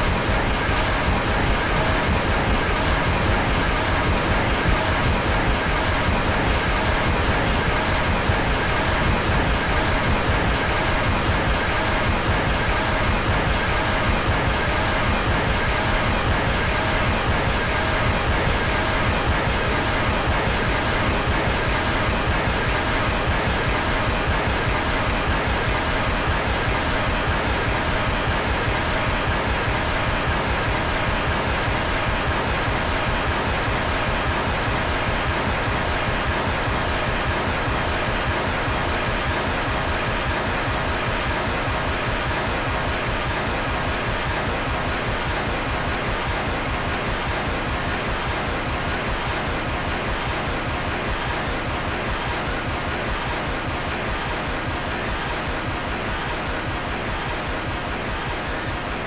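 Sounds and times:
loud static noise: 0:00.0 - 0:59.0.

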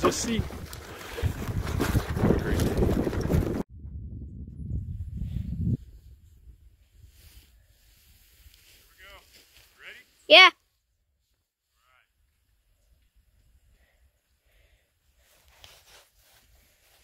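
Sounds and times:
low wind rumble: 0:00.0 - 0:08.1
wind buffeting microphone: 0:00.0 - 0:08.4.

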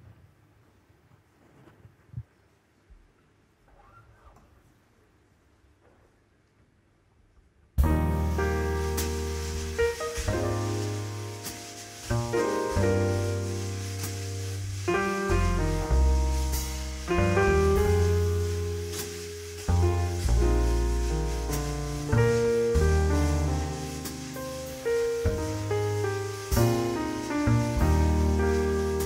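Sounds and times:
piano chords: 0:07.8 - 0:29.0
deep bass notes: 0:12.0 - 0:19.0, 0:19.6 - 0:29.0.

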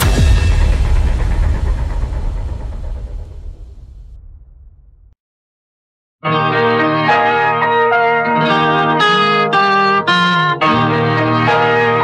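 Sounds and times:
deep low rumble: 0:00.0 - 0:05.2.

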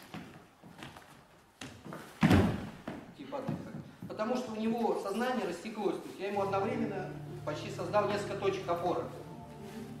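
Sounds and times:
body falling onto wooden floor: 0:01.7 - 0:03.6.

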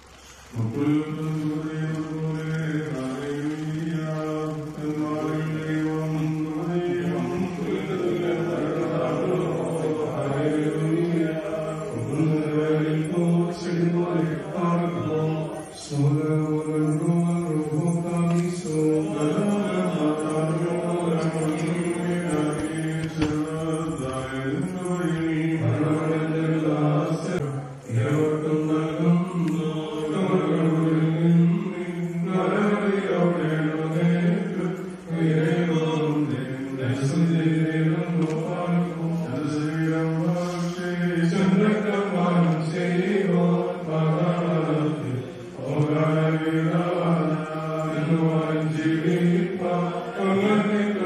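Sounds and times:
priests chanting: 0:00.4 - 0:51.0.

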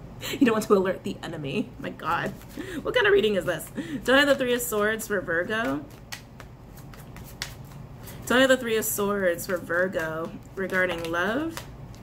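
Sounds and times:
cards being shuffled: 0:02.1 - 0:12.0
cards clicking: 0:05.6 - 0:07.8, 0:09.3 - 0:12.0.

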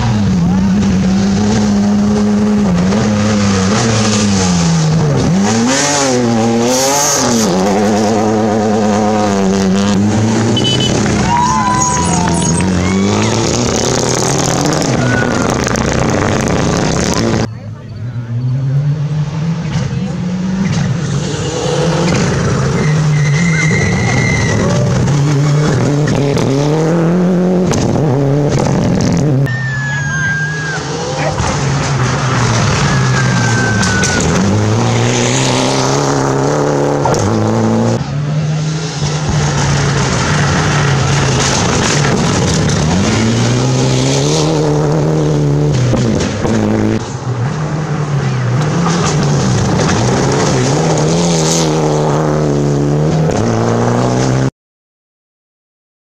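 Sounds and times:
rally car engines revving: 0:00.0 - 0:54.5.

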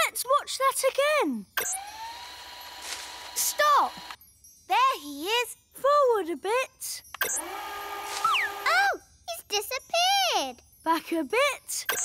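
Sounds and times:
electric whir: 0:01.6 - 0:04.2, 0:07.2 - 0:08.8
falling whistle: 0:08.2 - 0:08.7.

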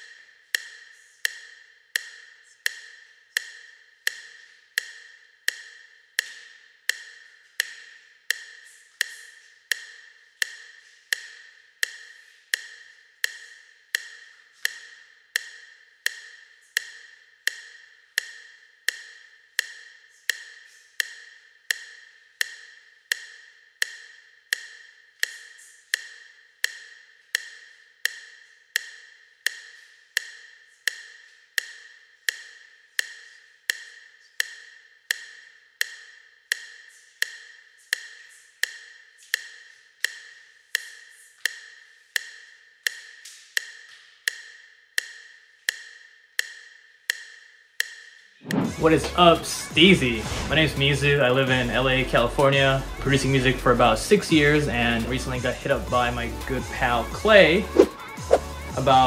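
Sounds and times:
metronome clicking: 0:00.0 - 0:50.1.

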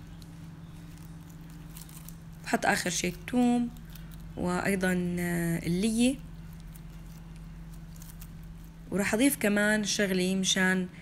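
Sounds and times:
gloved hands rustling: 0:00.0 - 0:04.6, 0:06.0 - 0:09.0
steady low hum: 0:00.0 - 0:11.0.

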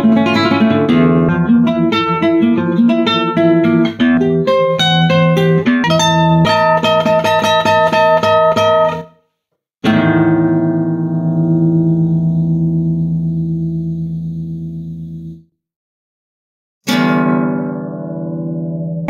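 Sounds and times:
solo classical guitar: 0:00.0 - 0:09.2, 0:09.8 - 0:15.4, 0:16.8 - 0:19.0.

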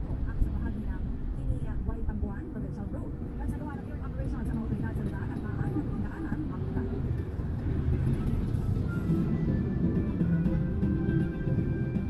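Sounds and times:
engine and tyre rumble: 0:00.0 - 0:12.0.

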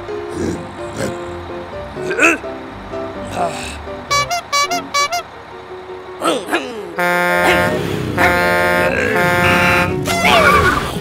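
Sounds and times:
loud horn-like blast: 0:04.1 - 0:05.3, 0:07.0 - 0:10.6.

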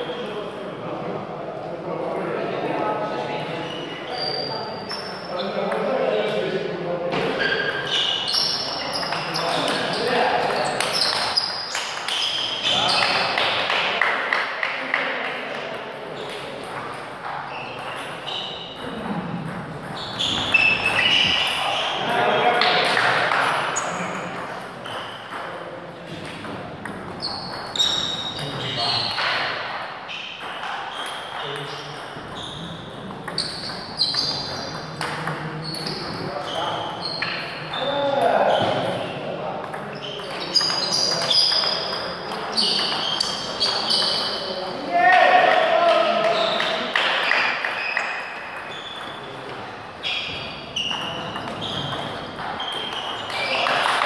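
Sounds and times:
people talking: 0:00.0 - 0:11.4, 0:12.6 - 0:27.2, 0:27.8 - 0:29.5, 0:31.4 - 0:47.9, 0:48.7 - 0:54.0.

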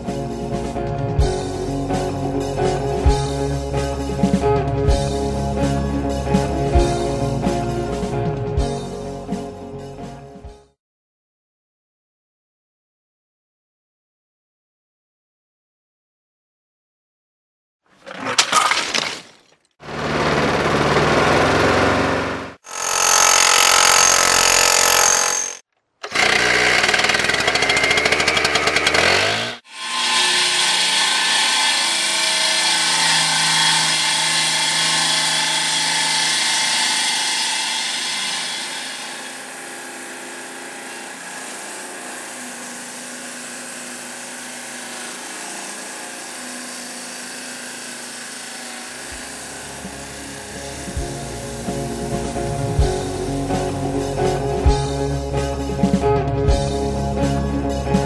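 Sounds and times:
table saw cutting stone: 0:19.8 - 0:53.8.

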